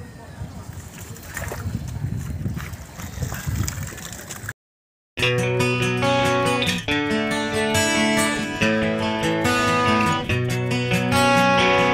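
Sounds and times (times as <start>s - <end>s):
water sloshing and gurgling: 0.7s - 4.5s.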